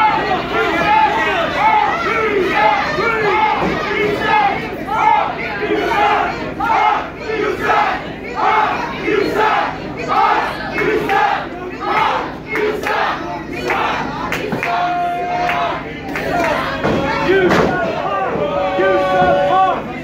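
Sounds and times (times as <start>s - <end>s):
crowd chanting: 0.0s - 20.0s.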